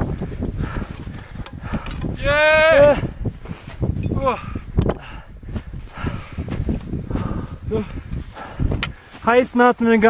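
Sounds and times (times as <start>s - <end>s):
wind on microphone: 0.0s - 9.2s
footsteps in snow: 5.5s - 10.0s.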